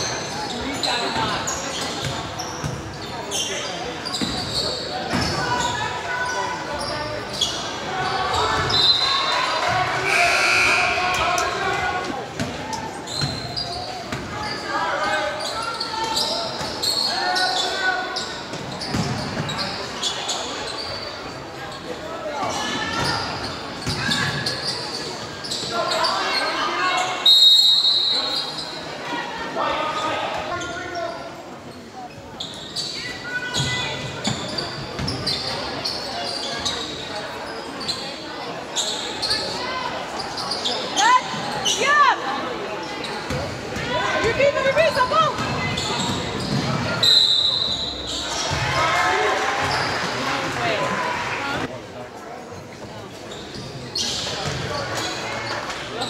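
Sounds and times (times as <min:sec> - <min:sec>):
sneakers squeaking: 0:00.0 - 0:28.9, 0:29.9 - 0:42.2, 0:42.8 - 0:48.8, 0:49.6 - 0:51.0, 0:52.4 - 0:56.0
people calling out: 0:08.0 - 0:12.2
referee's whistle: 0:10.0 - 0:11.1, 0:27.2 - 0:28.6, 0:47.0 - 0:48.2.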